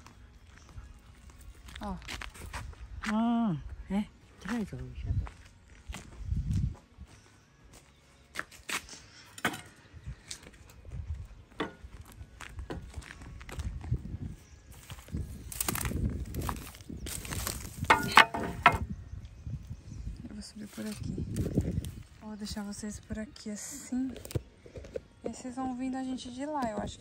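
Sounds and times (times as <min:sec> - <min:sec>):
footsteps on gritty dirt: 0:00.0 - 0:03.3, 0:04.4 - 0:09.1, 0:10.2 - 0:18.8.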